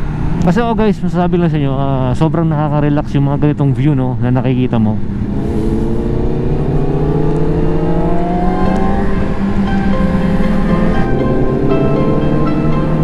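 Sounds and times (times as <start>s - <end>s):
wind and road noise: 0.0s - 13.0s
motorcycle engine accelerating: 5.0s - 13.0s.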